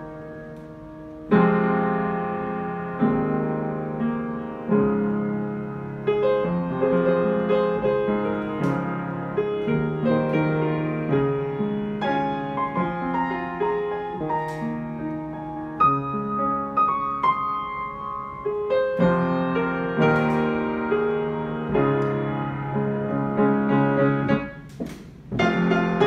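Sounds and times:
digital piano chords: 0:00.0 - 0:26.0
piano melody of single notes: 0:00.0 - 0:26.0.

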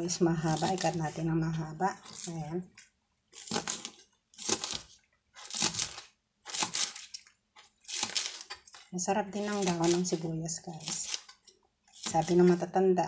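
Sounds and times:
knife slicing onto plastic board: 0:03.4 - 0:07.1, 0:07.9 - 0:08.6.

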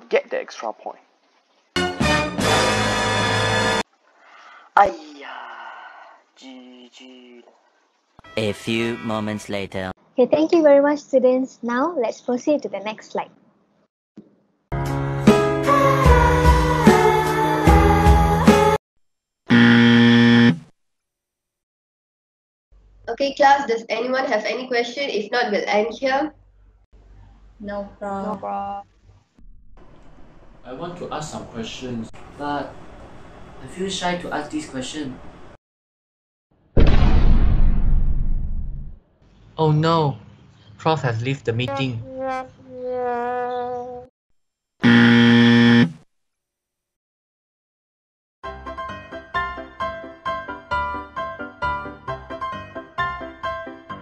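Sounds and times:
loud alert buzzer: 0:19.5 - 0:20.6, 0:44.8 - 0:46.0.

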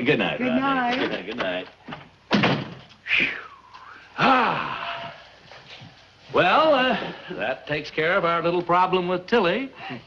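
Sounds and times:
wooden door shutting: 0:01.4 - 0:02.9.

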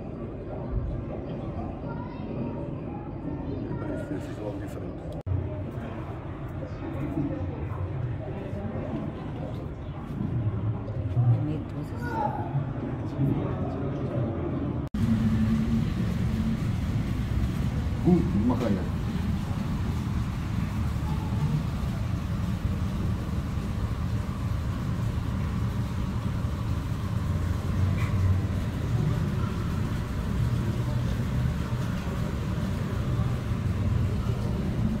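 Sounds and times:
low indoor room rumble: 0:05.1 - 0:35.0
faint voices: 0:17.5 - 0:35.0.

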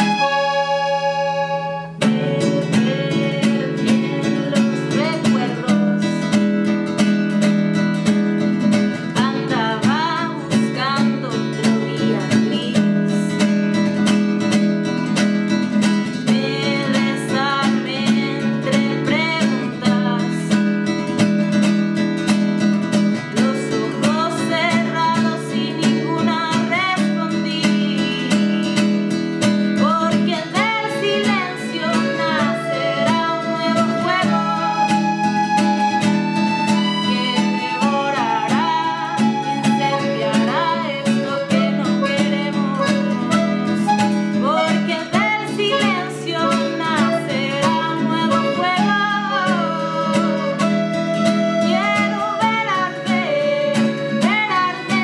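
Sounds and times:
woman singing: 0:00.0 - 0:14.5, 0:15.9 - 0:21.6, 0:22.9 - 0:55.0
accordion chords: 0:00.0 - 0:55.0
strummed acoustic guitar: 0:00.0 - 0:55.0.

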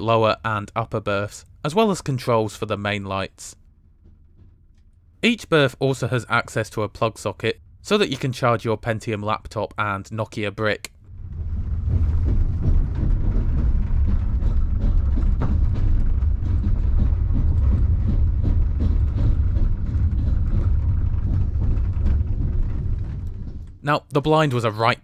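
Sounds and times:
train rumbling: 0:00.0 - 0:25.0
running gear clicks and rattles: 0:11.2 - 0:23.9.

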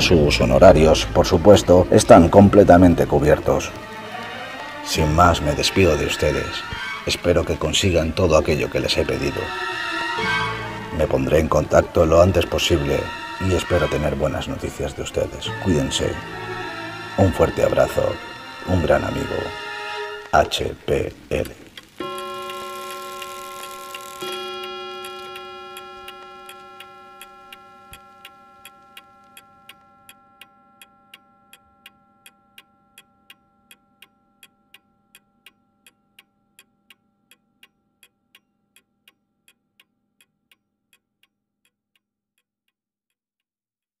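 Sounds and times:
clock ticking: 0:20.2 - 0:42.5
ringing chord: 0:22.0 - 0:37.3.

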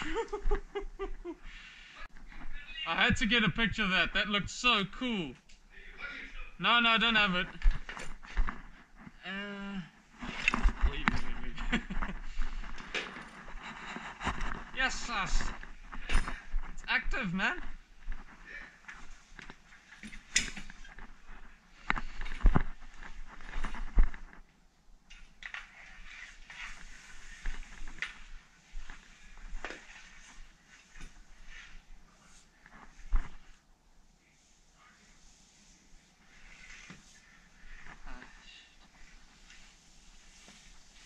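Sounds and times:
rustling movement: 0:06.2 - 0:09.2, 0:09.9 - 0:41.0.

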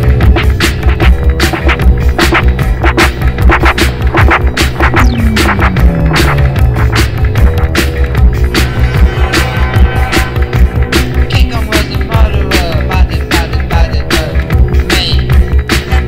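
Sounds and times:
dark-wave dance music: 0:00.0 - 0:16.0
tone sliding downward: 0:04.8 - 0:07.4.

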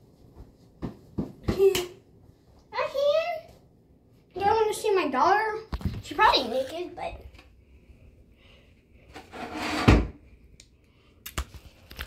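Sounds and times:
scraping rub: 0:09.1 - 0:10.0.

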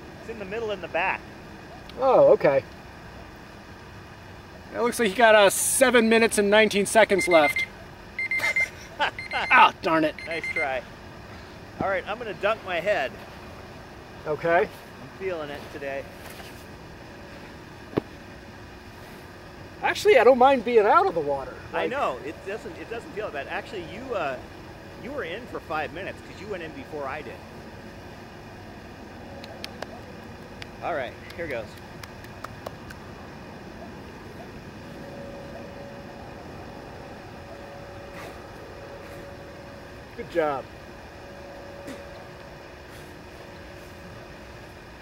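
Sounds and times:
faint outdoor background noise: 0:00.0 - 0:45.0
faint steady hum: 0:00.0 - 0:45.0
steady background noise: 0:00.0 - 0:45.0.

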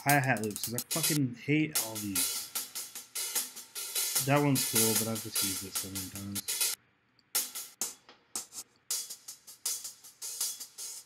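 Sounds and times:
hi-hat strokes: 0:00.0 - 0:06.8, 0:07.4 - 0:11.0.

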